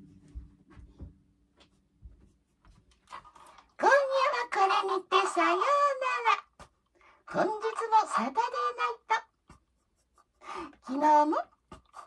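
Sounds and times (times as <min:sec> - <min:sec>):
woman speaking: 0:03.8 - 0:06.6, 0:07.3 - 0:09.3, 0:10.6 - 0:11.6.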